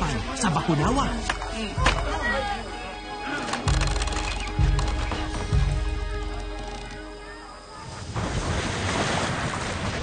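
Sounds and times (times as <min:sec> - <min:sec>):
background music: 0:00.0 - 0:07.7.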